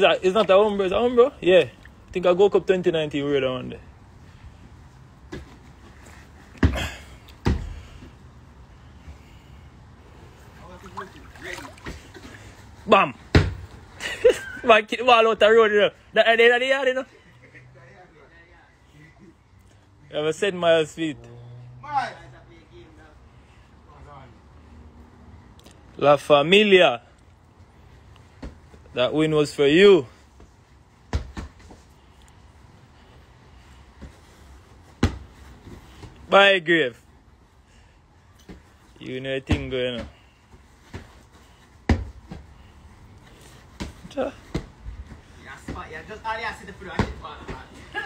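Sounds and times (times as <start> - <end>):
low background noise: 0.0 - 48.0
football being kicked: 13.3 - 13.6, 35.0 - 35.3, 41.9 - 42.4.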